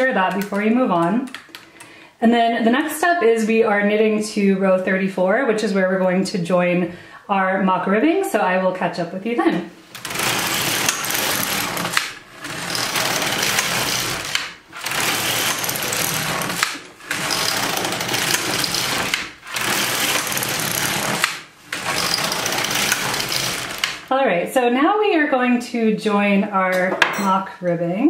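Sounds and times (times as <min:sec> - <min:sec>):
knitting machine carriage clatter: 0:00.0 - 0:01.6, 0:09.9 - 0:24.1.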